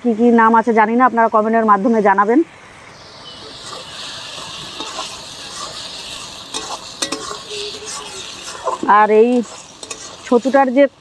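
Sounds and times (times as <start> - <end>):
mushrooms sizzling in oil: 0.2 - 11.0
metal spatula scraping a pan: 3.4 - 11.0.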